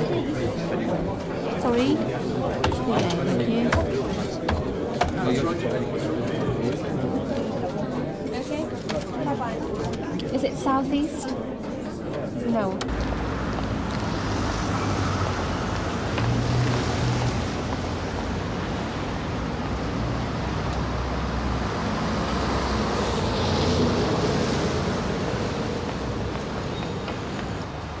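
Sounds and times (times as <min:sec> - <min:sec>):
city street traffic rumble: 0:00.0 - 0:28.0.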